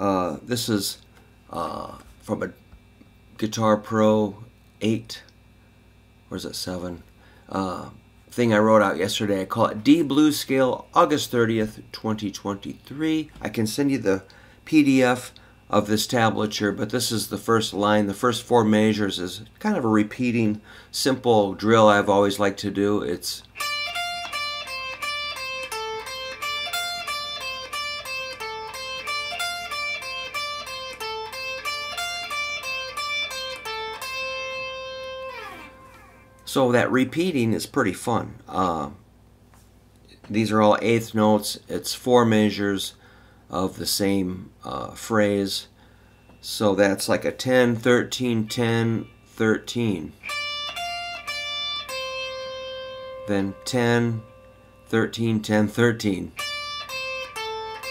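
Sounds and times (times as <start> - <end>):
electric guitar blues phrase: 21.4 - 37.2, 47.6 - 57.9.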